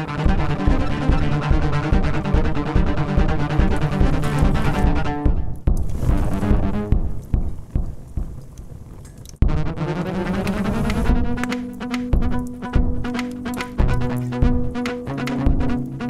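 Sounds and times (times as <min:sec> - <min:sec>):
repeated low beats: 0:00.0 - 0:16.0.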